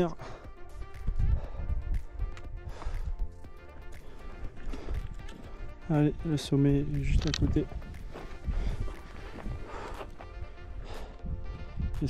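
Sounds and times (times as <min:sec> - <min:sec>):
background music: 0:00.0 - 0:12.0
footsteps on trail: 0:00.0 - 0:12.0
wind rumble on microphone: 0:01.0 - 0:03.2, 0:06.8 - 0:09.9, 0:10.7 - 0:12.0.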